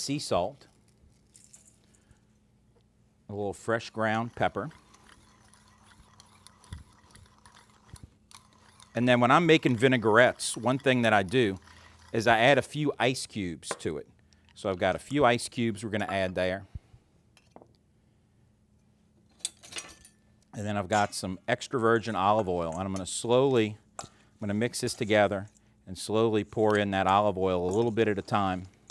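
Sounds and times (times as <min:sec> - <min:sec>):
pepper mill grinding: 0:03.6 - 0:12.9.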